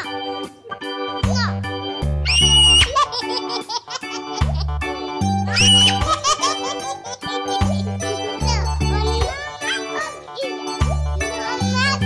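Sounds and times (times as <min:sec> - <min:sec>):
bouncy children's music: 0:00.0 - 0:12.0
high giggling voice: 0:02.6 - 0:08.7.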